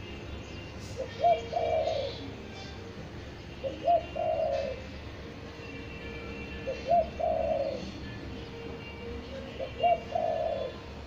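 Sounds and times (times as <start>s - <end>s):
dove cooing: 0.9s - 2.9s, 3.5s - 5.5s, 6.6s - 8.0s, 9.0s - 11.0s.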